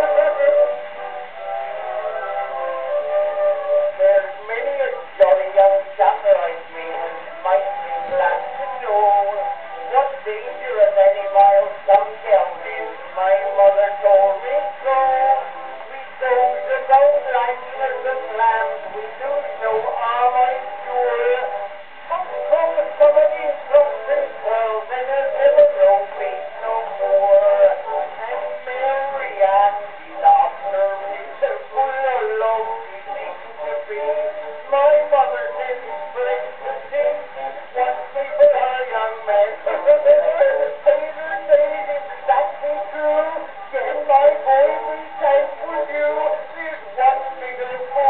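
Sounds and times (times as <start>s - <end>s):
man singing on old record: 0.0s - 48.0s
musical accompaniment: 0.0s - 48.0s.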